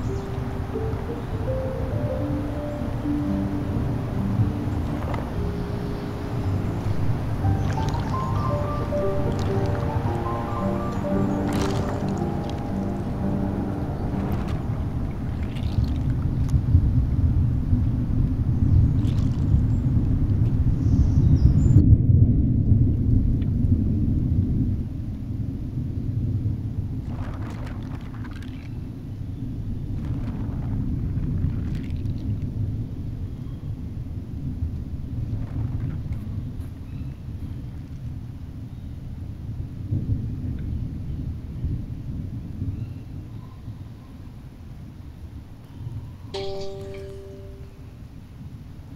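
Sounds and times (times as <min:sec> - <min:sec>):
underwater rumble: 0:03.0 - 0:20.8, 0:21.9 - 0:38.5
watery bursts: 0:04.3 - 0:16.7, 0:26.9 - 0:29.0, 0:29.8 - 0:32.5.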